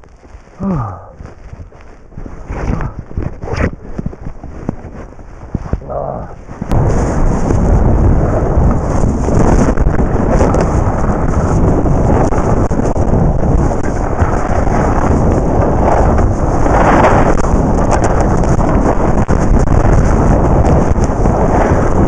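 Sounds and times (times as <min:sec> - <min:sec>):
skis rushing on snow: 0:00.0 - 0:22.0
wind buffeting microphone: 0:00.0 - 0:22.0.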